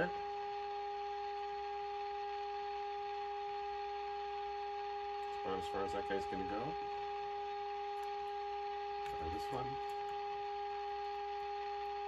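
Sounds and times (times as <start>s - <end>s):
steady test tone from speaker: 0.0s - 12.0s.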